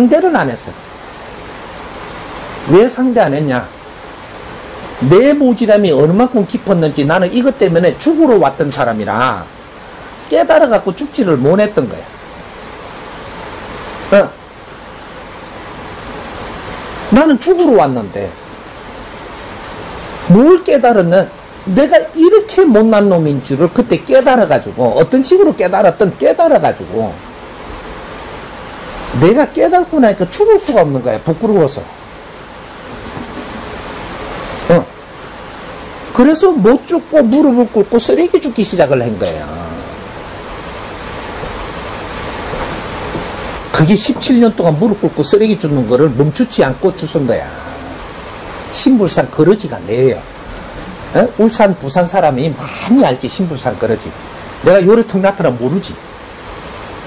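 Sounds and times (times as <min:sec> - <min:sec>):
flowing water rushing: 0:00.0 - 0:57.0.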